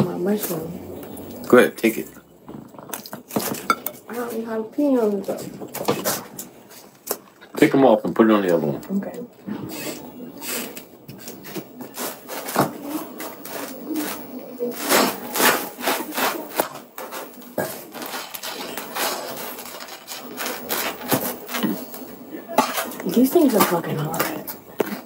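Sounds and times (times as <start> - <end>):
rubbing and scraping: 9.6 - 22.0.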